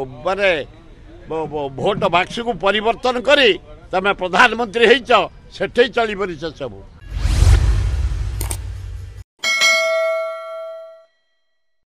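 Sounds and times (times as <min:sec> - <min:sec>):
notification bell ding: 0:09.4 - 0:11.3.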